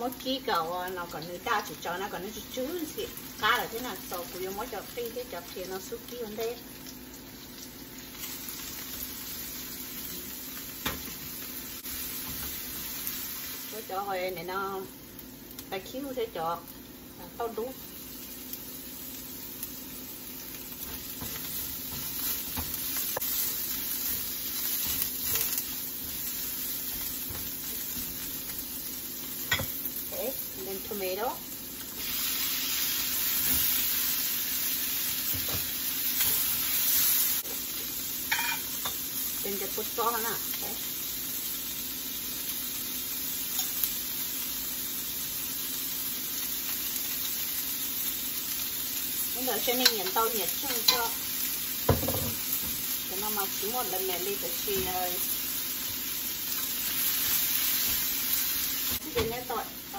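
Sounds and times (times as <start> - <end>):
shallots sizzling in hot oil: 0.0 - 59.9.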